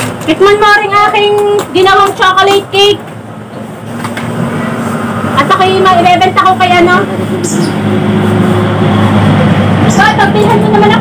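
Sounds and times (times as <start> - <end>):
motor vehicle rumbling: 0.0 - 11.0.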